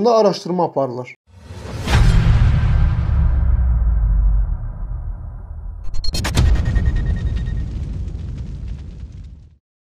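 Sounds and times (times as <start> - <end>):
low boom rumble: 1.4 - 9.6.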